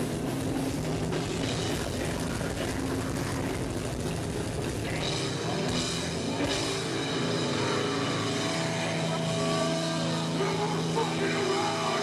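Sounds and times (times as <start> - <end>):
crowd noise: 0.0 - 12.0
distorted electric guitar: 0.0 - 12.0.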